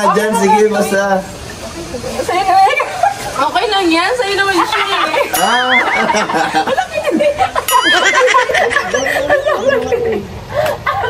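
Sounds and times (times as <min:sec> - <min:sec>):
women laughing hard: 0:04.5 - 0:11.0.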